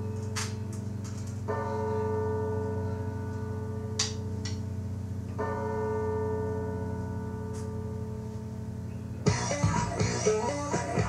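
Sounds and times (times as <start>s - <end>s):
low electric hum: 0.0s - 11.0s.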